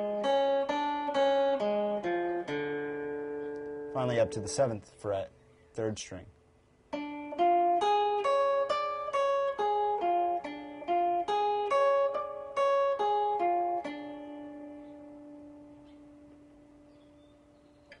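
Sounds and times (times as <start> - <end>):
acoustic guitar arpeggio: 0.0 - 5.3, 6.9 - 17.9.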